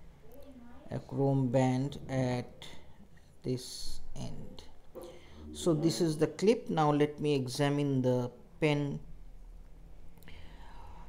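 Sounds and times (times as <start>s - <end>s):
steady low hum: 1.6s - 11.0s
soft breathy hiss: 10.2s - 11.0s.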